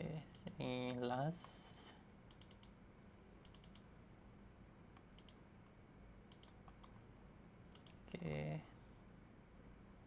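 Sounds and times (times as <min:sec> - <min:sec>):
computer keyboard keystrokes: 0:02.3 - 0:02.7, 0:03.4 - 0:03.8, 0:06.3 - 0:07.0.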